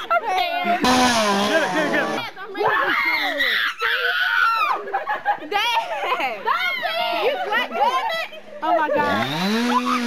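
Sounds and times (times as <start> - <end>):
excited voices: 0.0 - 10.0
people screaming: 2.6 - 4.9, 9.6 - 10.0.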